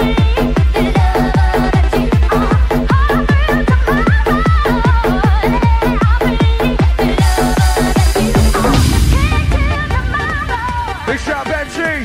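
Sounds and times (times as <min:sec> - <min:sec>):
four-to-the-floor kick drum: 0:00.0 - 0:11.4
electronic dance music: 0:00.0 - 0:12.0
repeating bass pattern: 0:07.0 - 0:11.1.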